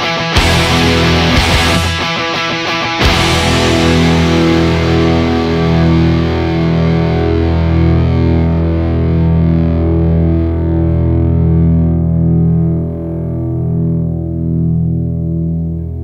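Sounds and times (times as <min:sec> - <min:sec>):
distorted electric guitar chord ringing: 0:00.0 - 0:16.0.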